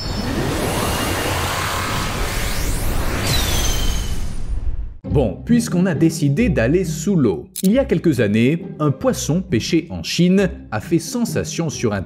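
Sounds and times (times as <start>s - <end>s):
background music: 5.0s - 12.0s.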